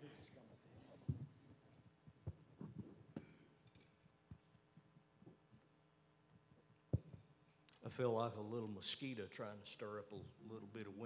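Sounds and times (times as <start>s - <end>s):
soft thumps and knocks: 1.0s - 1.4s, 2.2s - 3.3s, 6.9s - 7.3s.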